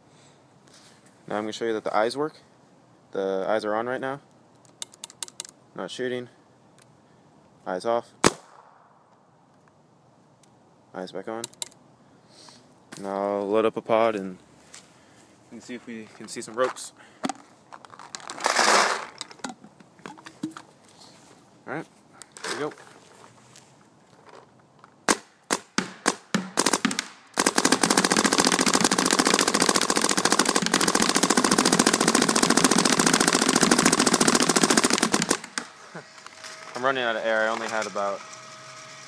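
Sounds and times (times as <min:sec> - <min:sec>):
paintball marker firing: 0:08.2 - 0:09.0, 0:25.1 - 0:35.7.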